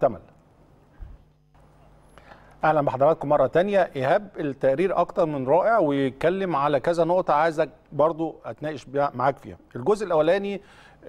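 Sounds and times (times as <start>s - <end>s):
faint low hum: 0.0s - 11.0s
man speaking: 2.6s - 10.6s.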